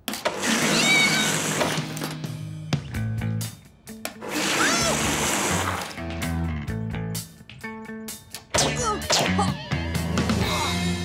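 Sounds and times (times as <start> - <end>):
ice cream machine whirring and gushing: 0.1 - 2.1, 4.2 - 6.0
background music: 0.4 - 11.0.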